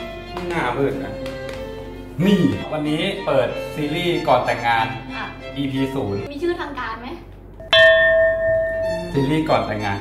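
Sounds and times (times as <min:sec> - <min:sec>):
bell chime ding: 0:07.6 - 0:09.2.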